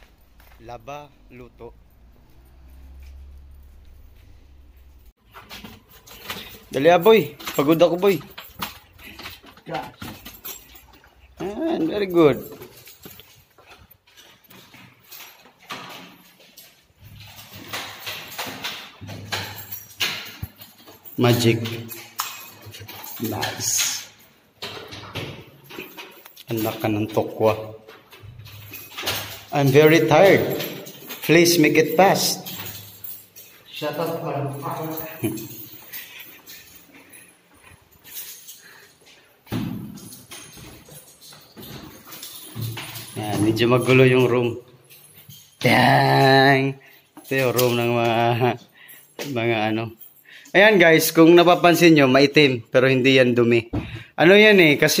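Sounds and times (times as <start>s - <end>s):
footsteps: 0.0s - 45.6s
handling noises: 0.0s - 45.7s.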